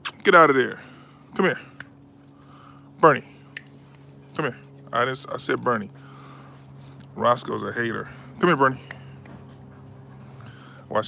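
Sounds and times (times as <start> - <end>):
steady low hum: 0.0 - 11.0
dog panting faintly: 1.6 - 11.0.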